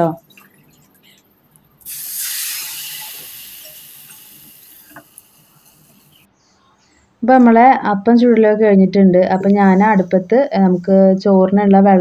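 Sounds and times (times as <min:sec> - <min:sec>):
liquid sizzling on hot pan: 0:01.8 - 0:06.3.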